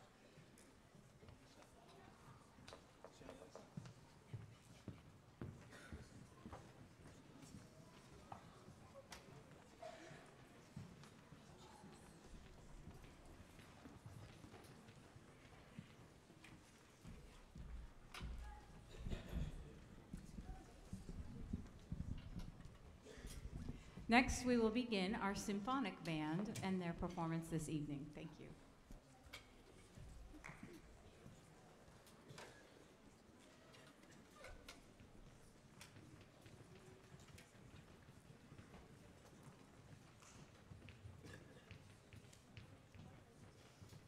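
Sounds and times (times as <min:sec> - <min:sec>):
footsteps clicking on stage floor: 0:10.4 - 0:29.0.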